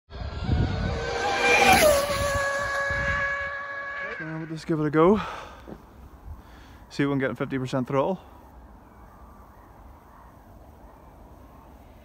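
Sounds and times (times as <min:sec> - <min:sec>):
electric motor whining: 0:00.1 - 0:04.2
road and wind noise: 0:00.1 - 0:12.0.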